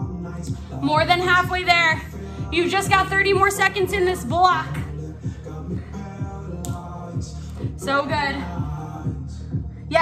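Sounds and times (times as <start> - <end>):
pop music with driving beat: 0.0 - 10.0.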